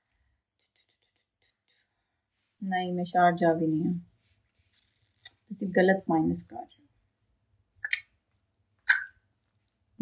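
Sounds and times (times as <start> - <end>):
woman speaking: 2.6 - 4.1, 4.8 - 6.8.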